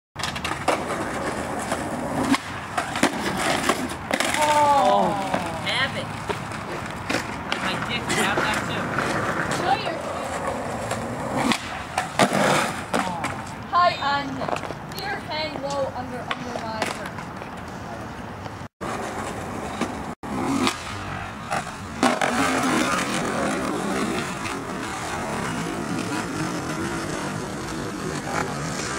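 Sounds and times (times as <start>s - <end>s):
skateboard clacking on concrete: 0.2s - 28.9s
skateboard wheels rolling: 0.2s - 28.9s
skateboard landing slap: 2.2s - 5.5s.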